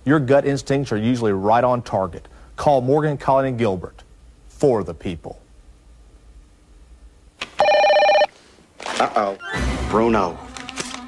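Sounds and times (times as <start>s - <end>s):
telephone ringing: 7.6s - 8.4s.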